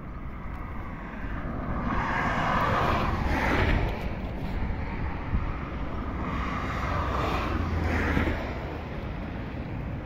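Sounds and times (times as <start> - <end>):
road noise rumble: 0.0 - 10.0
wind on microphone: 0.0 - 10.0.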